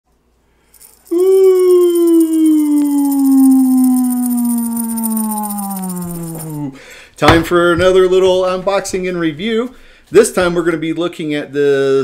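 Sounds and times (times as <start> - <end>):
long falling howl: 1.1 - 6.6.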